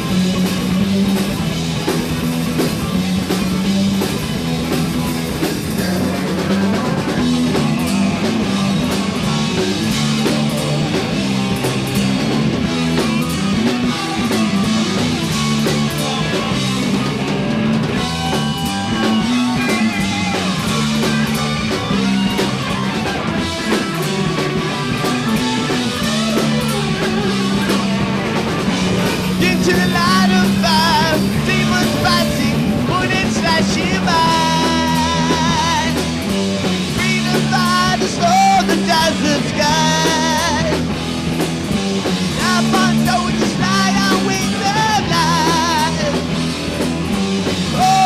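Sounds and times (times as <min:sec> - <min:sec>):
heavy metal band playing: 0:00.0 - 0:48.0.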